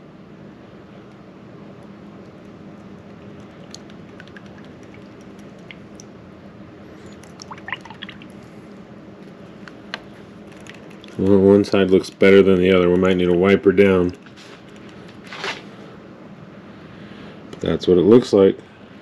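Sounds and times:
liquid drips and splashes: 3.2s - 6.1s, 7.1s - 8.4s.

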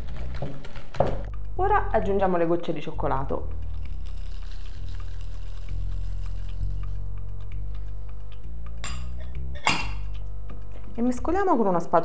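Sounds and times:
background music with bass line: 1.0s - 12.0s
chocolate chips rattling into glass bowl: 3.6s - 7.0s.

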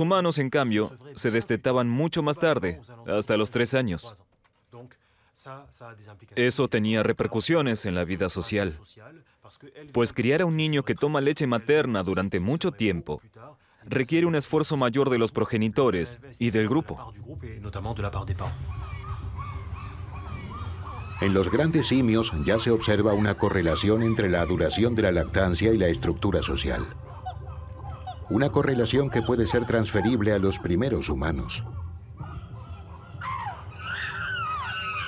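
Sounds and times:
low steady hum: 16.3s - 33.4s
chimpanzees calling: 18.1s - 35.0s
short animal calls: 18.5s - 25.3s.

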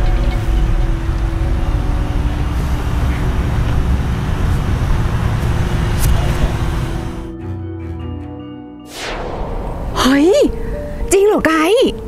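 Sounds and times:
road traffic rumble: 0.0s - 8.5s.

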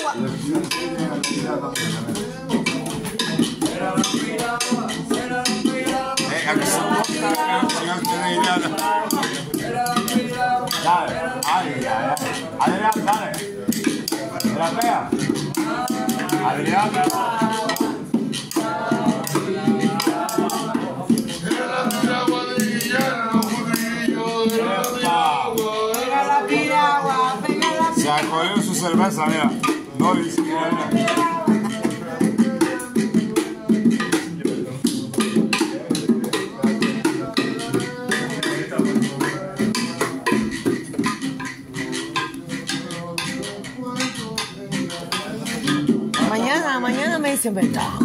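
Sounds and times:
small hand drum: 0.0s - 48.0s
voices singing: 0.0s - 48.0s.

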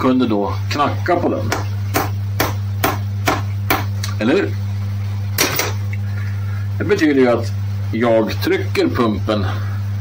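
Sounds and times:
steady low hum: 0.0s - 10.0s
hammer tapping on metal: 1.5s - 3.9s.

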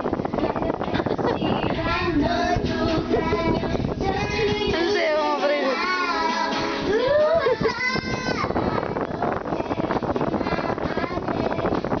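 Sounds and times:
music: 0.0s - 12.0s
child singing: 0.3s - 12.0s.

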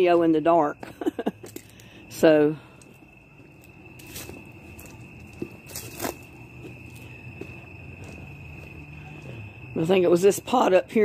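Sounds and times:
high-pitched insect trill: 0.0s - 11.0s
footsteps: 2.8s - 9.5s.

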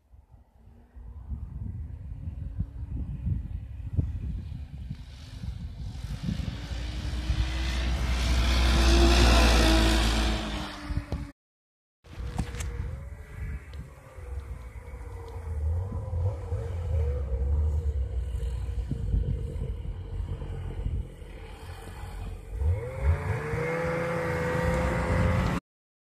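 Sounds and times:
snowmobile engine whine: 0.4s - 11.3s, 12.1s - 25.6s
steady low rumble: 12.1s - 22.6s.

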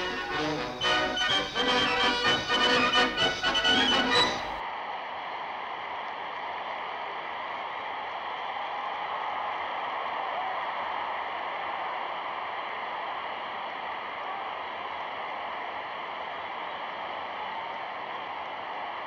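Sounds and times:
newsreel background music: 0.0s - 4.6s.

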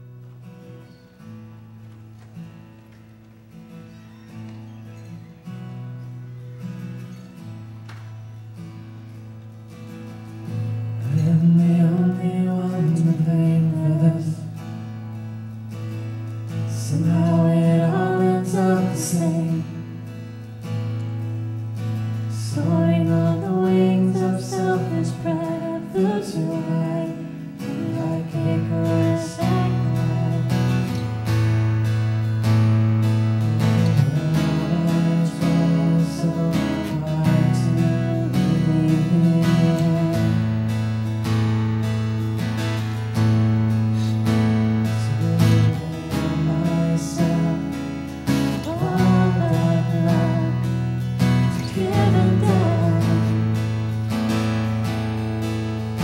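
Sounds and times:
acoustic guitar strumming: 0.0s - 56.0s
low bass: 5.2s - 56.0s
woman singing: 16.9s - 19.8s, 22.4s - 30.9s, 34.6s - 40.4s, 48.5s - 50.7s, 51.4s - 53.6s.

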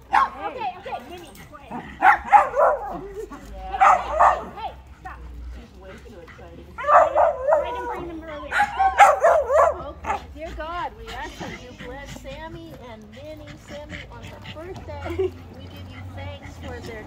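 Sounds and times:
small dog barking and yipping: 0.1s - 0.7s, 2.0s - 3.1s, 3.7s - 4.7s, 6.8s - 10.2s.

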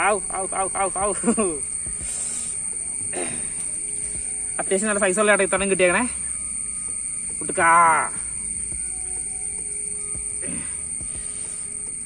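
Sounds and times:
man's voice in pitched bursts: 0.0s - 1.6s, 7.4s - 8.2s.

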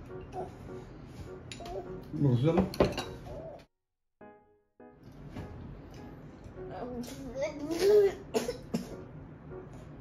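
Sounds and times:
person coughing: 8.3s - 9.0s.

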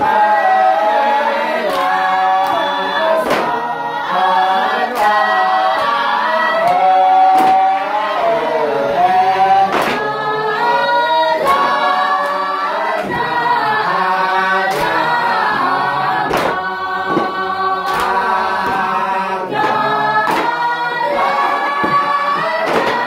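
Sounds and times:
group singing unaccompanied: 0.0s - 23.0s
sharp percussive beat: 1.6s - 3.8s, 9.3s - 10.8s, 11.4s - 23.0s.

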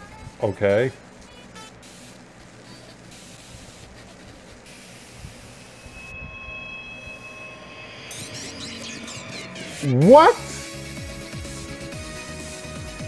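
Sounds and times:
steady hiss: 0.0s - 8.2s
faint high tone: 5.3s - 10.5s.

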